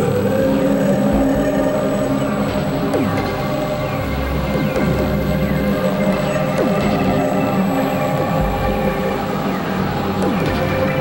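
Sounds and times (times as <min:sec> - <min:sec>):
industrial synthesizer drone: 0:00.0 - 0:11.0.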